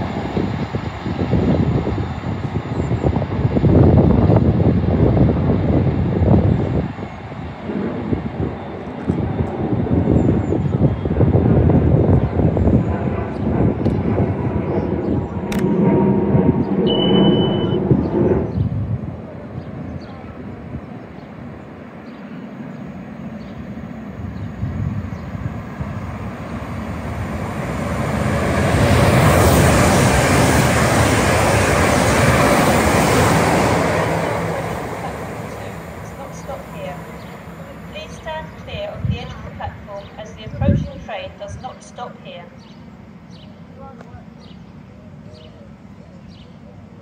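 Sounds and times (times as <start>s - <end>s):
wind buffeting microphone: 0.0s - 41.8s
passenger train approaching: 0.0s - 47.0s.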